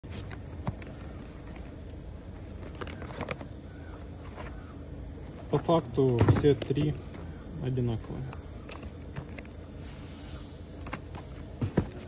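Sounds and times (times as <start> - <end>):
low background rumble: 0.0 - 12.0
cardboard boxes rustling and knocking: 0.1 - 1.6, 6.0 - 7.0, 10.8 - 12.0.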